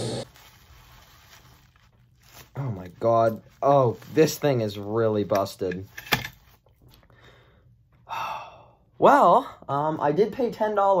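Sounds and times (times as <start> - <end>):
bubble wrap crinkle: 0.0 - 5.4
bubble wrap rustling: 0.0 - 5.4.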